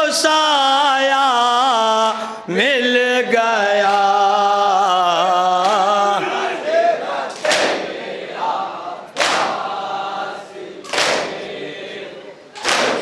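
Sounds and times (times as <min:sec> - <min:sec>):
group chanting: 0:02.5 - 0:13.0
crowd slapping chests: 0:05.5 - 0:13.0.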